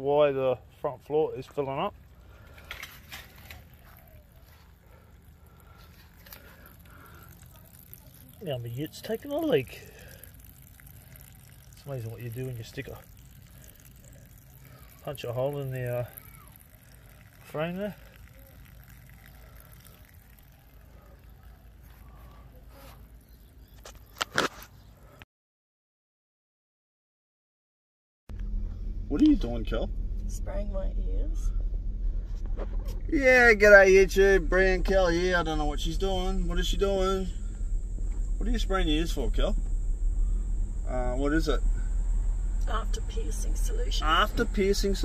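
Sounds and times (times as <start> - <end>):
water trickling onto grass: 2.2 - 25.2.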